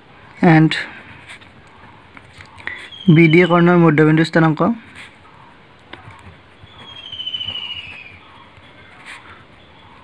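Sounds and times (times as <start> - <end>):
high whistling tone: 6.7 - 8.2.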